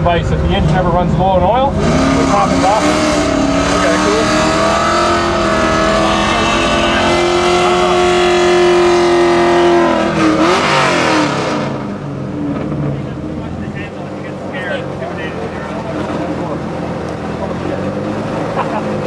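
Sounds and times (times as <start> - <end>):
car engine revving: 0.0 - 19.0
car engines idling loudly: 0.0 - 19.0.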